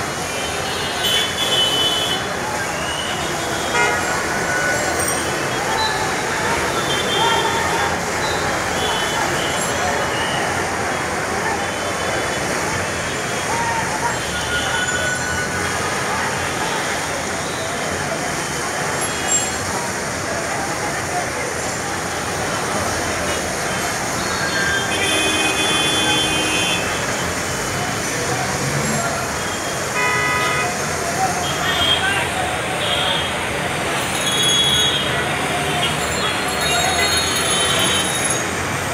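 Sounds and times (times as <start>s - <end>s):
murmur of distant voices: 0.0s - 38.9s
road traffic rush: 0.0s - 38.9s
car and bus horns tooting: 0.4s - 5.0s, 23.7s - 27.3s, 29.3s - 38.4s.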